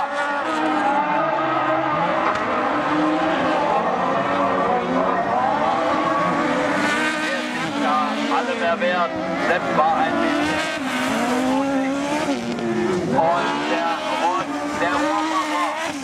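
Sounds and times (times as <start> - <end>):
race car engines revving: 0.0 - 16.0.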